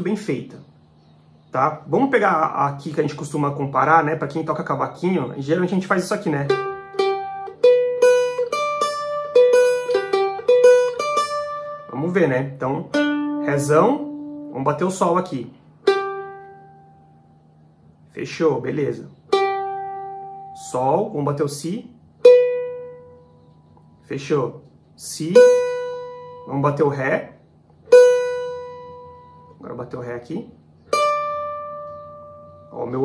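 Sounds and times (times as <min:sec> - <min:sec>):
cavaquinho notes plucked: 0:01.8 - 0:17.4, 0:18.7 - 0:30.0, 0:30.8 - 0:33.0
plucked steel string note: 0:25.4 - 0:26.5, 0:27.8 - 0:29.6.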